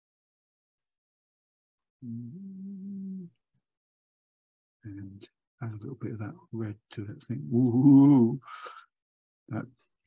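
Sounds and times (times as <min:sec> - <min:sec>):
man humming: 0:02.0 - 0:03.4, 0:07.6 - 0:08.4.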